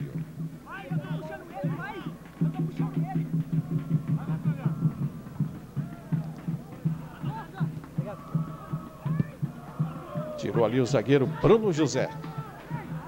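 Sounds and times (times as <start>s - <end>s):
crowd chanting and singing: 0.0s - 13.0s
low drum beat: 0.0s - 13.0s.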